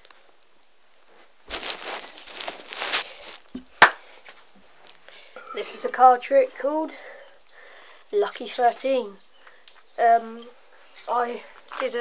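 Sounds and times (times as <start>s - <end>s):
rustling handling noise: 0.0s - 5.1s.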